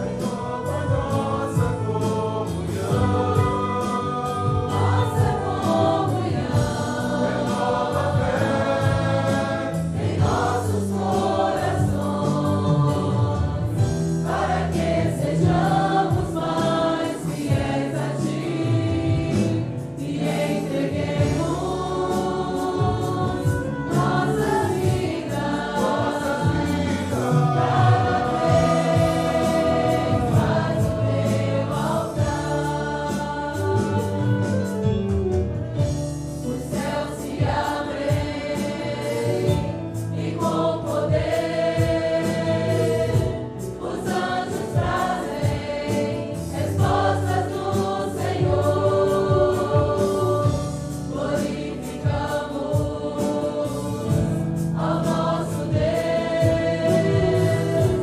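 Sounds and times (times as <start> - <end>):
congregation singing a hymn: 0.0 - 58.0
musical accompaniment: 0.0 - 58.0.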